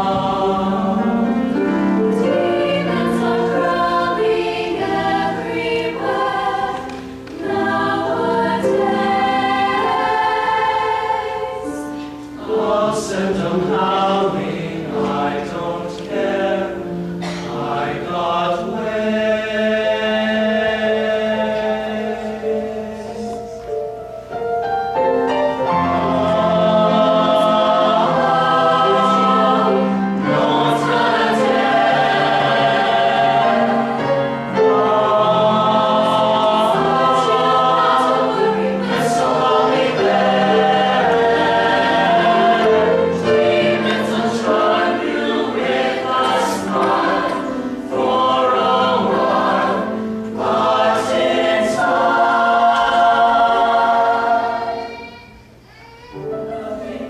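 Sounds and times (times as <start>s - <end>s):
choir singing in harmony: 0.0s - 55.6s, 56.2s - 57.0s.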